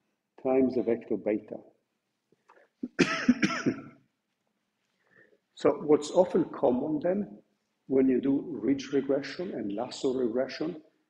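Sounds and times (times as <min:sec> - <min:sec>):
man coughing: 0:02.8 - 0:03.9.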